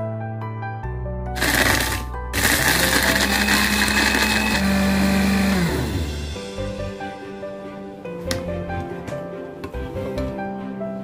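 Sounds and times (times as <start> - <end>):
electric blender grinding cookies: 1.4 - 6.2.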